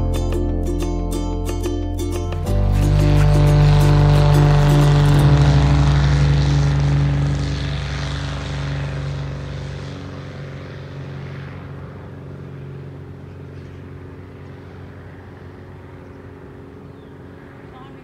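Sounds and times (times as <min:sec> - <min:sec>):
propeller aircraft engine: 0:02.3 - 0:18.0.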